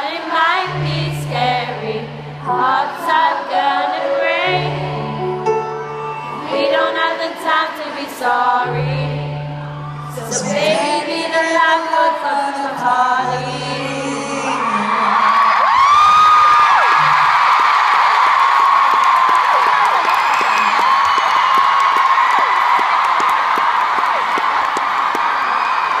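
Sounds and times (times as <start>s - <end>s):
arena crowd cheering and screaming: 4.6s - 8.6s, 9.2s - 11.0s, 14.3s - 26.0s.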